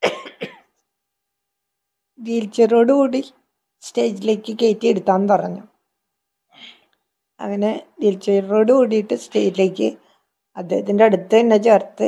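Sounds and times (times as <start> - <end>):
woman coughing: 0.0 - 0.8.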